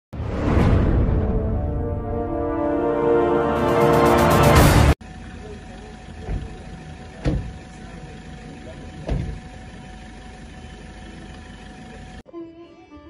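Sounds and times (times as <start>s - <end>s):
car engine idling: 5.0s - 12.2s
dull knocks: 7.2s - 7.6s, 9.0s - 9.5s.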